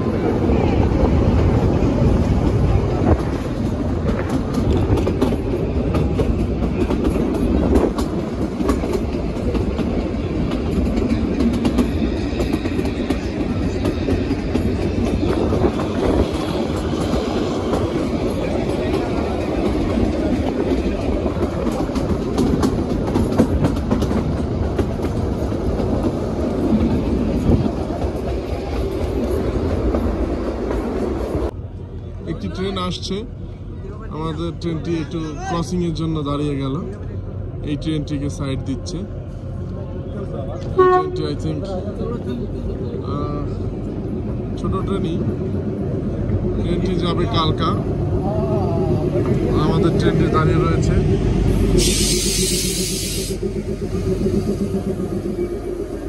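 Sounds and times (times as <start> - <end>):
train coaches rumbling: 0.0 - 56.0
wheels clacking over rails: 1.1 - 31.5.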